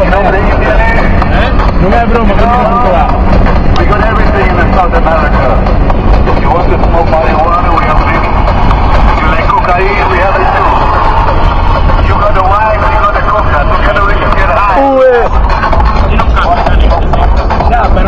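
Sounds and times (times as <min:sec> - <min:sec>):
engine and tyre rumble: 0:00.0 - 0:18.0
people's voices: 0:00.0 - 0:18.0.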